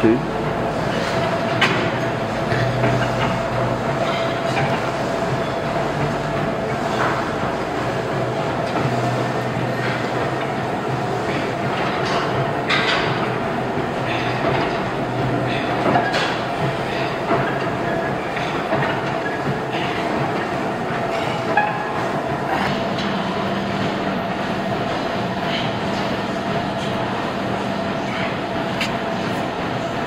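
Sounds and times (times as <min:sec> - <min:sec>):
steady mechanical hum: 0:00.0 - 0:30.0
gym machine plates clanking: 0:00.7 - 0:26.2.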